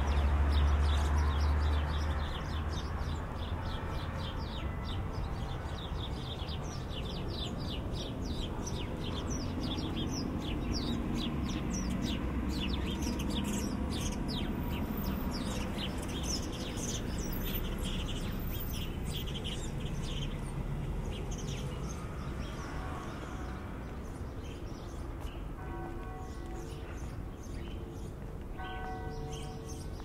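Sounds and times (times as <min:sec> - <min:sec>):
low city rumble: 0:00.0 - 0:30.0
songbirds chirping: 0:00.0 - 0:30.0.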